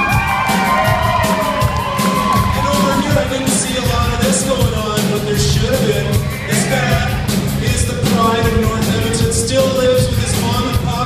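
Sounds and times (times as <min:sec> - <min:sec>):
bending guitar lead line: 0:00.0 - 0:11.0
live rock band playing: 0:00.0 - 0:11.0.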